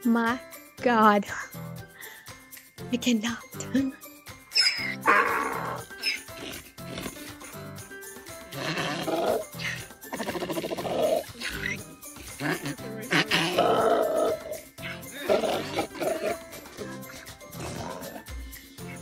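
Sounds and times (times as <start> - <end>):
background music: 0.0 - 19.0
donkey braying: 4.5 - 7.4, 8.5 - 18.3.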